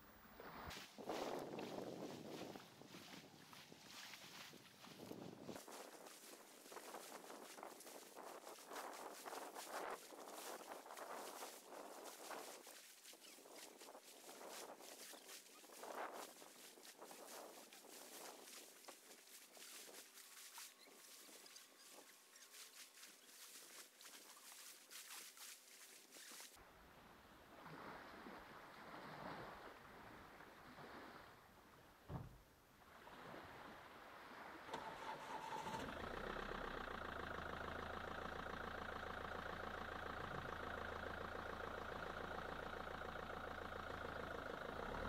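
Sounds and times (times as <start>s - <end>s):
footsteps on beach: 0.4s - 26.6s.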